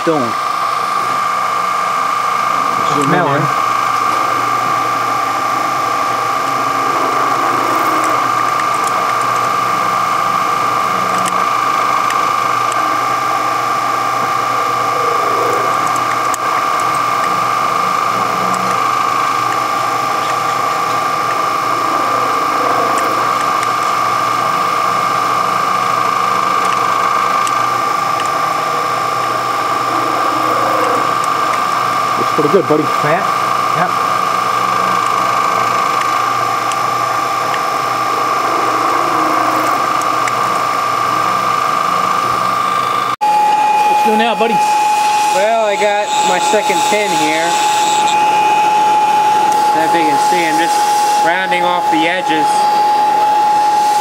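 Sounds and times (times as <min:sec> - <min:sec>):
milling machine whining: 0:00.0 - 0:54.0.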